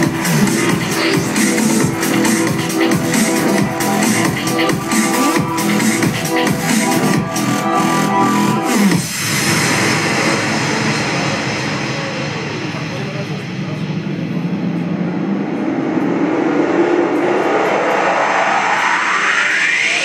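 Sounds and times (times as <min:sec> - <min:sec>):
electronic breakbeat music: 0:00.0 - 0:20.0
synth wash with rising sweep: 0:00.0 - 0:20.0.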